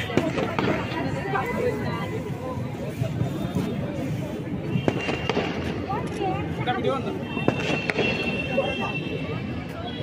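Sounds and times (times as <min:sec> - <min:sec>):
firecrackers cracking: 0:00.0 - 0:06.6, 0:07.4 - 0:08.6
crowd chatter: 0:00.0 - 0:10.0.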